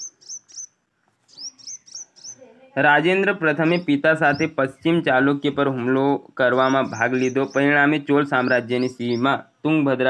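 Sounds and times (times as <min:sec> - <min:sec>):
bird chirping: 0:00.0 - 0:09.9.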